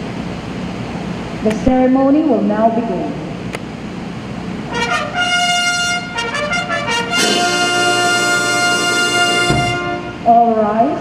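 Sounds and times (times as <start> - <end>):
bugle call on a brass horn: 4.7 - 10.3.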